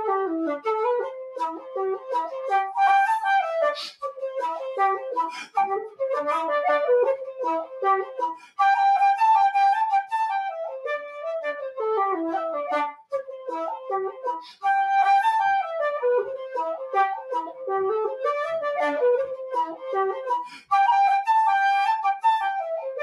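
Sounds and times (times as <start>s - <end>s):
wooden flute playing a reel: 0.0s - 23.0s.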